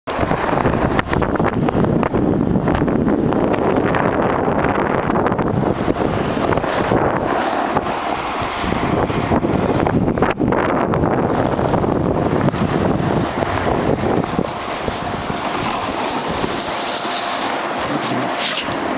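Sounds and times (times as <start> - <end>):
wind buffeting microphone: 0.1 - 18.9
skis sliding over packed snow: 5.7 - 9.9, 11.0 - 18.9.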